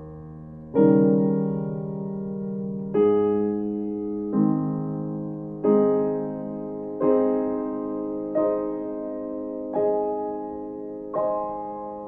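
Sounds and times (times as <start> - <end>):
soft piano chords: 0.0 - 12.0.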